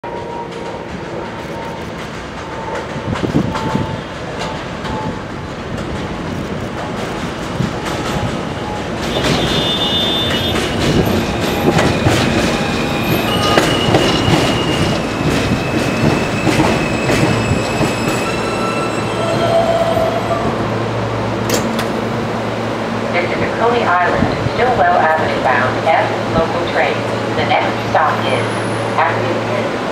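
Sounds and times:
train whining tones: 0:00.0 - 0:05.8, 0:07.2 - 0:29.8
subway train wheels rumbling: 0:00.0 - 0:29.9.

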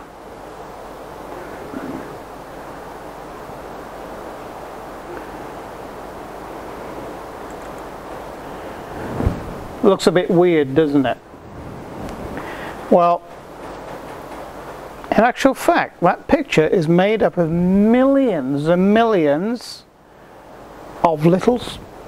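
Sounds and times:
gale-force wind blowing: 0:00.0 - 0:19.0.

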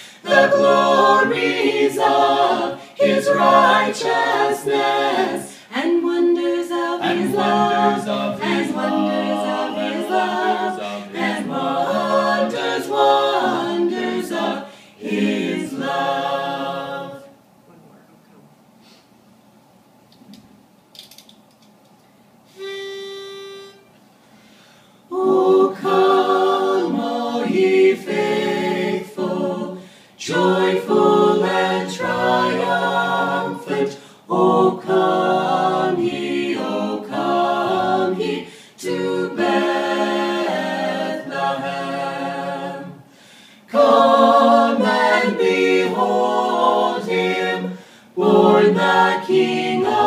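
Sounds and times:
singer breathing in: 0:00.0 - 0:00.2, 0:05.5 - 0:05.7, 0:14.7 - 0:15.0, 0:18.8 - 0:19.2, 0:24.2 - 0:25.1, 0:29.8 - 0:30.2, 0:38.5 - 0:38.8, 0:43.1 - 0:43.7, 0:47.8 - 0:48.1
vocal quartet singing a cappella: 0:00.0 - 0:17.5, 0:22.5 - 0:50.0.

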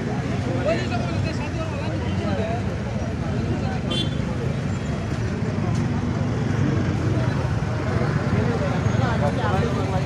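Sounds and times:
crowd talking indistinctly: 0:00.0 - 0:10.0
traffic engines rumbling: 0:00.0 - 0:10.0.

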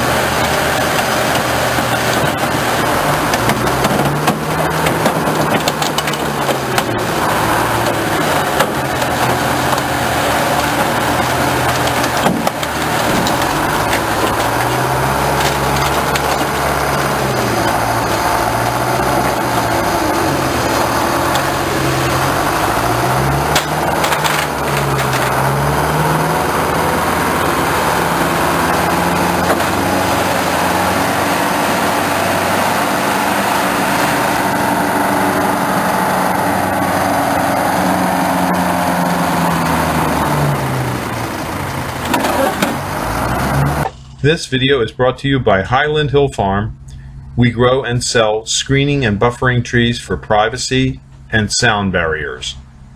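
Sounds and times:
heavy machinery engine under load: 0:00.0 - 0:44.4
knocks: 0:10.8 - 0:14.8.

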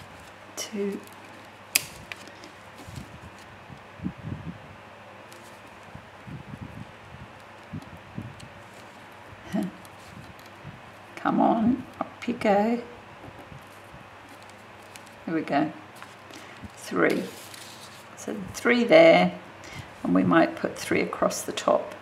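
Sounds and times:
electric fan running: 0:00.0 - 0:22.0.

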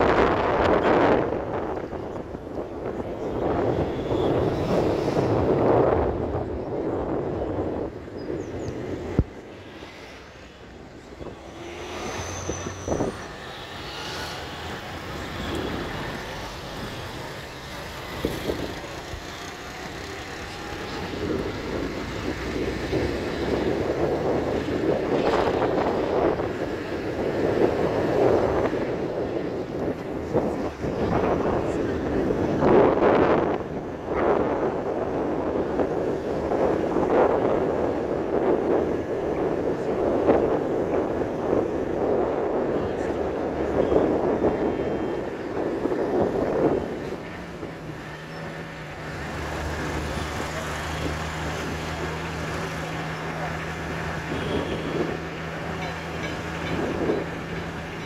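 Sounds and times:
road noise inside moving vehicle: 0:00.0 - 0:58.0
wind buffeting microphone: 0:00.0 - 0:58.0.

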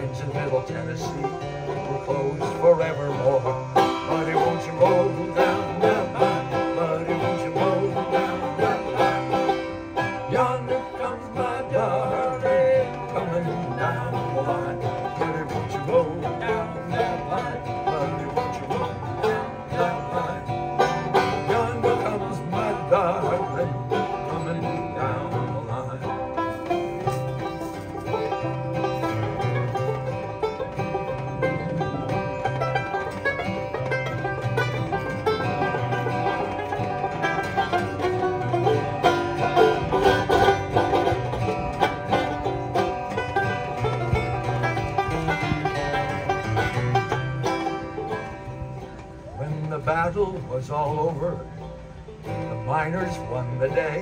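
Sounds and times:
plucked banjo: 0:00.0 - 0:54.0
strummed acoustic guitar: 0:00.0 - 0:54.0.

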